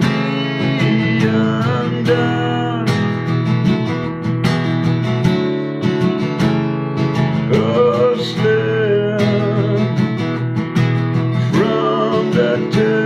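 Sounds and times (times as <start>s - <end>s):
acoustic guitar strumming chords: 0.0s - 13.0s.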